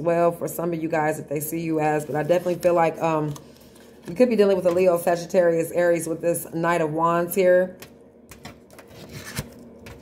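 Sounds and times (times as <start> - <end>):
cards rubbing and tapping: 8.3 - 10.0.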